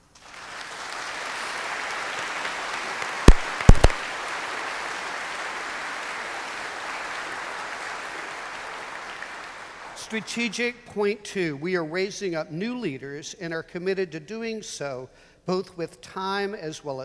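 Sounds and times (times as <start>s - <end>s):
audience applauding: 0.0s - 10.1s
sharp knocks: 3.3s - 4.0s.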